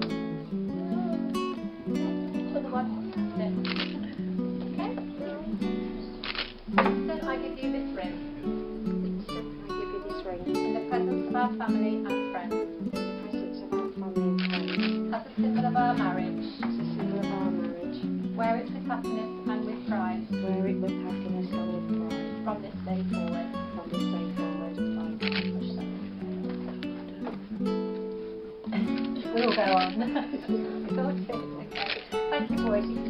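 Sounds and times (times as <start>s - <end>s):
acoustic guitar music: 0.0s - 33.0s.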